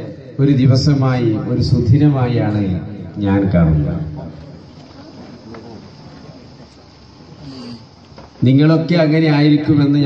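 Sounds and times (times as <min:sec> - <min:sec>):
man speaking: 0:00.0 - 0:04.2, 0:08.4 - 0:10.0.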